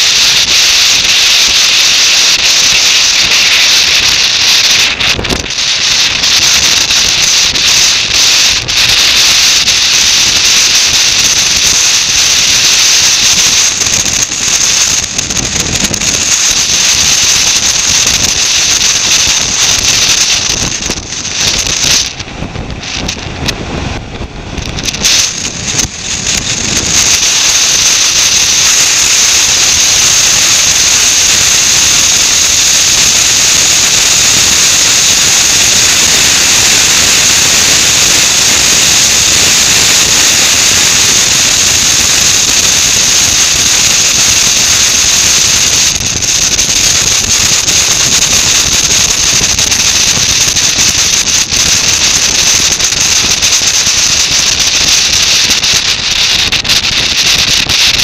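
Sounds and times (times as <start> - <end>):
wind rushing over camera: 0.0 - 58.0.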